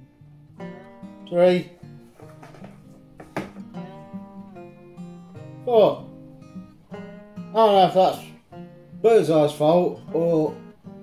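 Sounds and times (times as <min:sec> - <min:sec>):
strummed acoustic guitar: 0:00.0 - 0:11.0.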